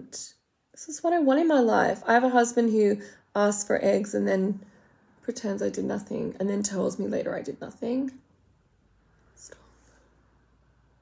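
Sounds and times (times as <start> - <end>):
woman whispering: 9.4 - 9.9.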